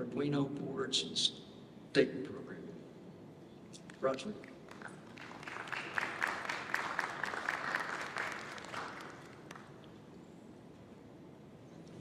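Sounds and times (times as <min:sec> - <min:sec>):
audience applauding: 0:04.6 - 0:09.8.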